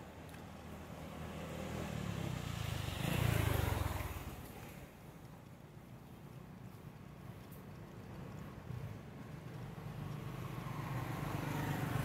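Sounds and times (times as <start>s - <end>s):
vehicle engine passing by: 0.9s - 4.5s.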